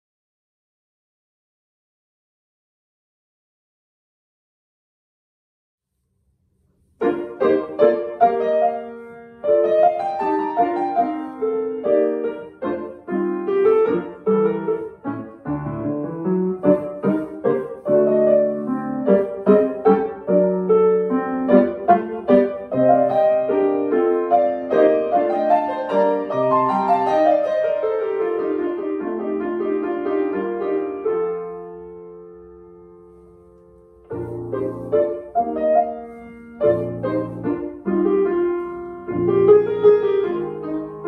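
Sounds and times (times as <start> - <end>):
solo piano minuet: 6.8 - 41.0.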